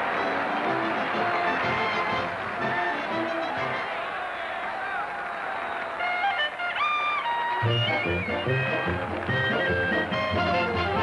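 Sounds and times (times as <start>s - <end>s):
brass band music: 0.0s - 4.2s, 7.2s - 11.0s
held melody notes: 7.0s - 11.0s.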